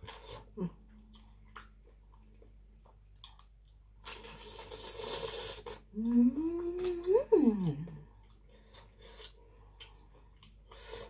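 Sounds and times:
woman humming mmm: 0:05.9 - 0:08.0.

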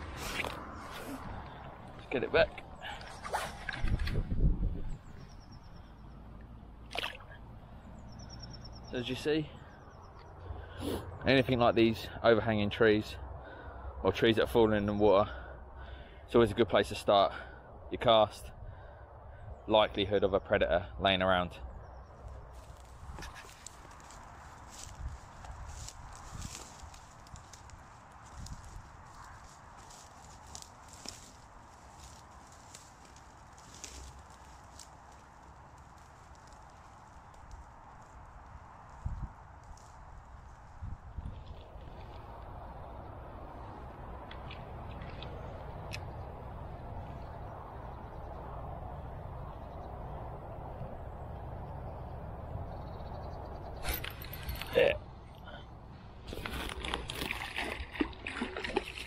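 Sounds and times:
wind buffeting microphone: 0:00.0 - 0:06.1, 0:21.9 - 0:54.7
dry reeds rustling and crackling: 0:22.1 - 0:46.1, 0:56.2 - 0:58.0.

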